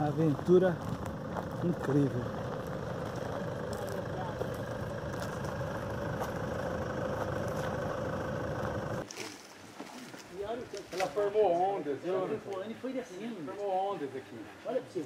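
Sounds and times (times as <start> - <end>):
man talking: 0.0 - 0.8, 1.6 - 2.3
car engine running: 0.0 - 9.0.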